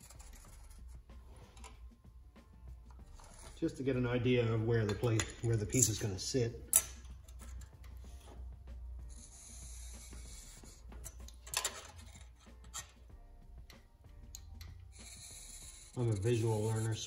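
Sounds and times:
steel rule scraping metal: 0.0s - 1.8s, 2.9s - 8.4s, 9.0s - 13.1s, 14.3s - 17.0s.

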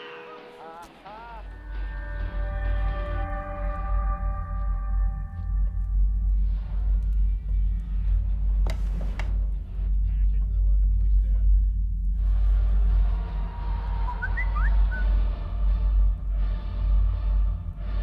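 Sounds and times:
low rumbling drone: 0.0s - 18.0s.

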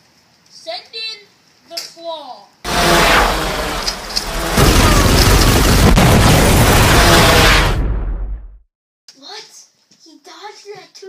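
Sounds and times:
rumbling explosion blast: 2.7s - 8.6s.

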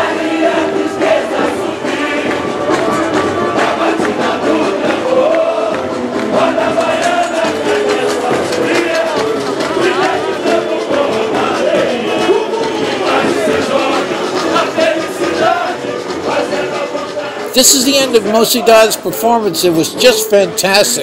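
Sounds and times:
crowd singing samba: 0.0s - 19.5s
samba percussion: 0.0s - 21.0s.

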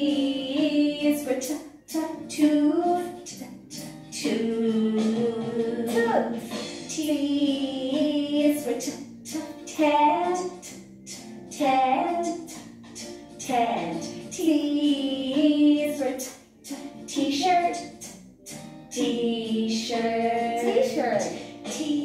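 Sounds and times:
children's song with voices singing: 0.0s - 22.0s.

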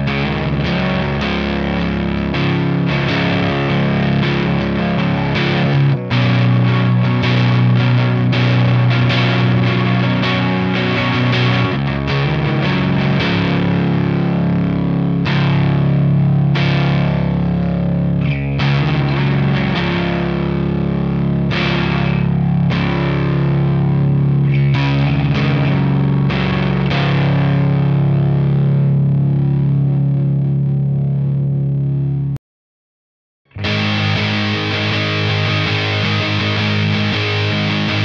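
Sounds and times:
distorted electric guitar chords: 0.0s - 32.4s, 33.5s - 38.0s.

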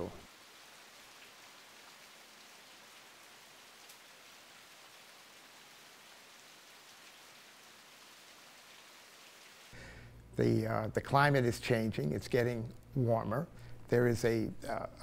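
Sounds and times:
light rain in forest: 0.0s - 15.0s.

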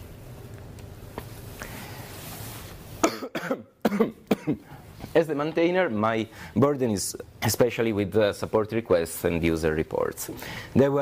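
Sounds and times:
man coughing: 3.0s - 4.7s.

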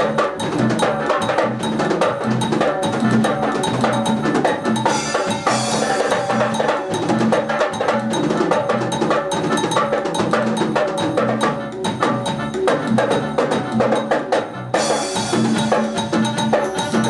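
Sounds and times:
live band playing instrumental: 0.0s - 17.0s.

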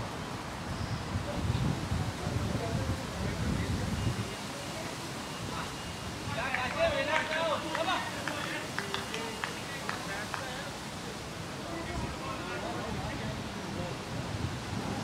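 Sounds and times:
wind on microphone: 0.0s - 6.9s, 12.8s - 15.0s
distant shouted calls: 5.2s - 10.4s.

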